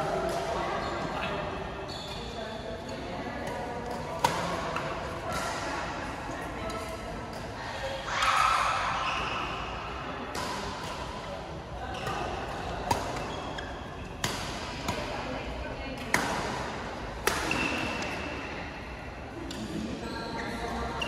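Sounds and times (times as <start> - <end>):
racket striking shuttlecock: 17.2 - 17.9.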